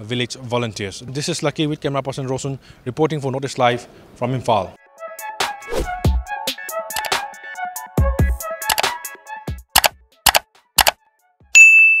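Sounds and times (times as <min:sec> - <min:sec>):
mouse clicks: 0:08.7 - 0:08.9, 0:09.8 - 0:11.0
bright bell ding: 0:11.6 - 0:12.0.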